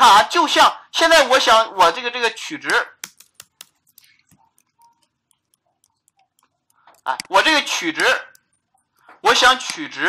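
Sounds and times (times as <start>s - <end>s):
computer keyboard keys clicking: 3.0s - 9.1s.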